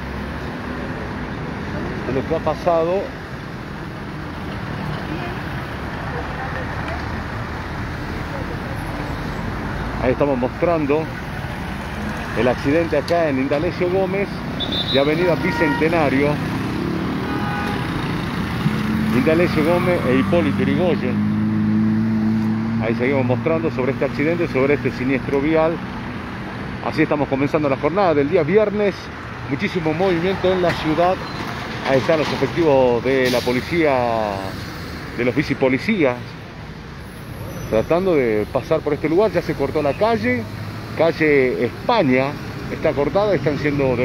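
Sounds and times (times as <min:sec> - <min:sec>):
cars driving past: 0:00.0 - 0:44.0
street traffic: 0:00.0 - 0:44.0.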